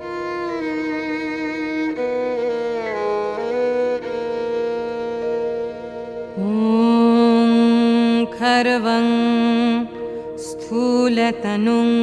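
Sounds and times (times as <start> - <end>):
person singing ornamented notes: 6.3 - 12.0.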